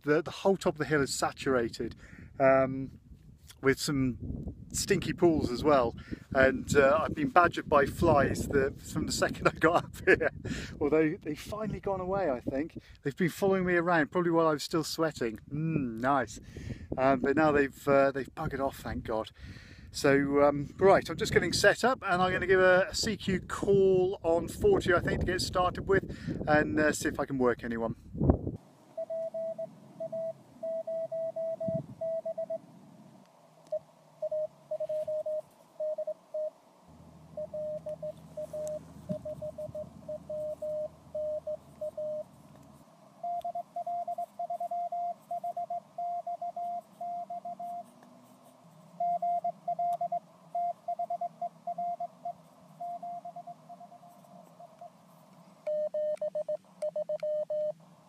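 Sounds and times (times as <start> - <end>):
morse code beep tone: 29.0 - 32.6, 33.7 - 36.6, 37.3 - 42.4, 43.2 - 48.0, 48.9 - 55.0, 55.6 - 57.8
faint radio band hiss: 31.7 - 55.7, 56.6 - 58.0.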